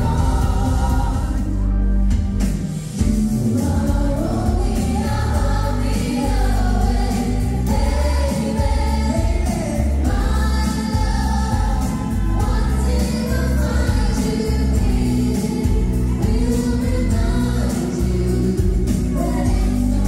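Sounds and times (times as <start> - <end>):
group singing in harmony: 0.0 - 2.1, 2.8 - 20.0
pop backing music: 0.0 - 20.0.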